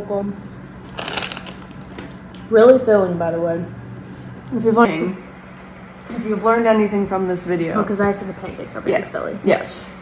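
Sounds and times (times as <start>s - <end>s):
paper napkin crumpling: 0.8s - 2.2s.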